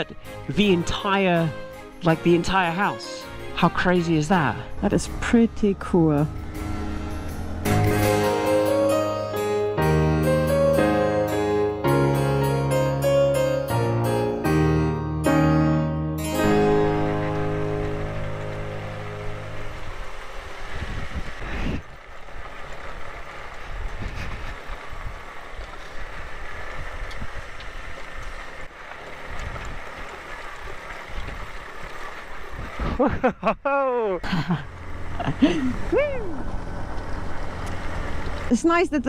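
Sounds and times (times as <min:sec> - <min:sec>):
piano background music: 0:00.0 - 0:20.7
motorcycle on gravel track: 0:16.7 - 0:32.9, 0:34.6 - 0:38.6.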